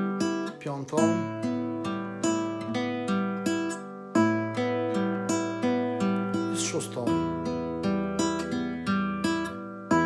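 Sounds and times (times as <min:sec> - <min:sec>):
classical guitar fingerpicked: 0:00.0 - 0:10.0.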